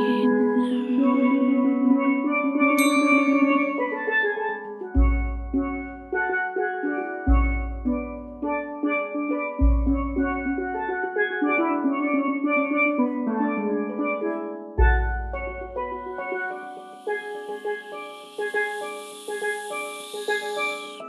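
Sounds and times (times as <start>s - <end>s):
steel pan melody: 0.0s - 21.0s
bass drum booming: 5.0s - 6.1s, 7.3s - 8.4s, 9.6s - 10.7s, 14.8s - 16.1s.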